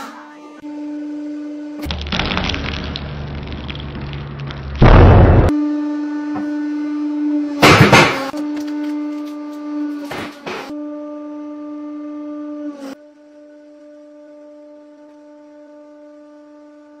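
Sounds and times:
object crunching under press: 1.9s - 5.5s.

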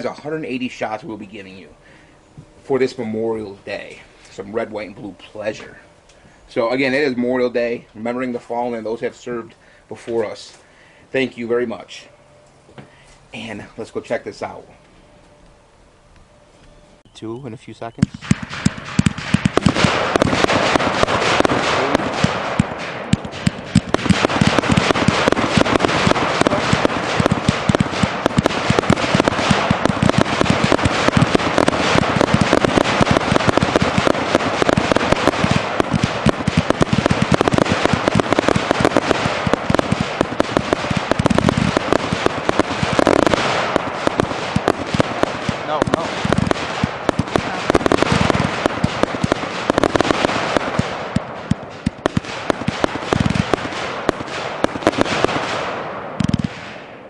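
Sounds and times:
fireworks launching and bursting: 0.0s - 1.6s, 18.0s - 57.0s
fireworks crackling: 0.0s - 12.0s, 18.0s - 57.0s.

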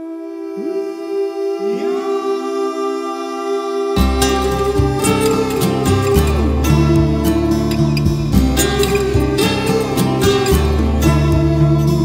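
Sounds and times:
a cappella vocal harmony: 0.0s - 12.0s.

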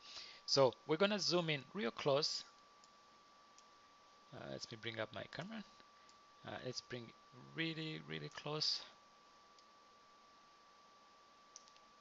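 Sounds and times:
faint room hiss: 0.0s - 12.0s
thin steady whine: 0.0s - 12.0s
faint clicks: 11.5s - 11.9s.

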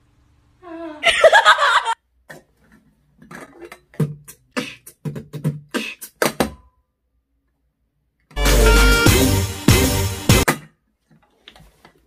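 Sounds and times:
beatboxing kicks and clicks: 4.0s - 6.5s.

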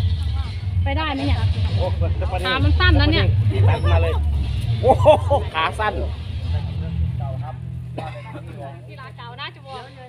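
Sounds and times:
steady low rumble: 0.0s - 10.0s
people talking: 0.2s - 4.2s, 4.8s - 10.0s.

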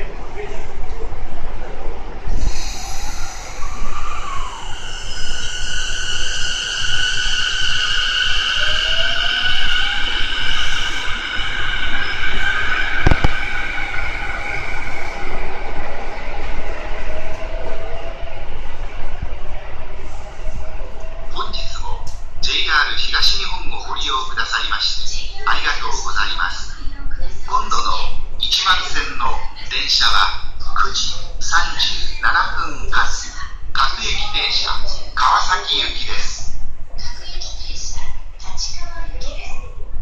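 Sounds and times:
sharp knock: 13.0s - 13.5s.

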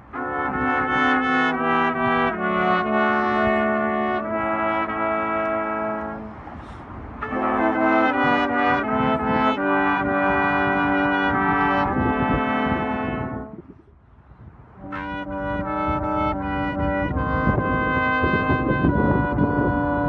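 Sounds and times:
brass quintet playing chords: 0.0s - 6.6s, 7.2s - 13.8s, 14.8s - 20.0s.

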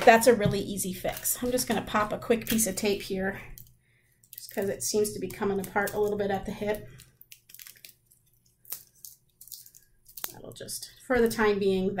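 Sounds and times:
foil and tape crinkling: 0.1s - 2.9s, 3.6s - 11.5s.

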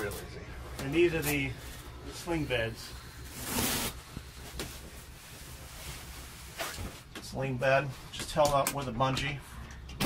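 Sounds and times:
fabric rustling: 3.3s - 7.1s.

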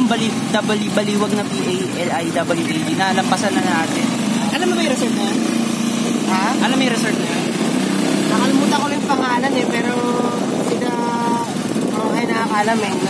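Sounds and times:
people's voices: 0.0s - 13.0s
vehicle engine running: 0.0s - 13.0s.

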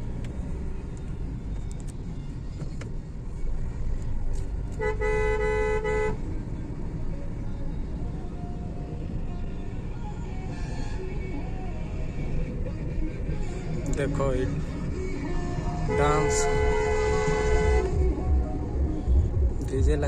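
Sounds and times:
road and engine rumble inside car: 0.0s - 20.0s
two-tone car horn blast: 4.8s - 6.2s, 15.9s - 18.1s.

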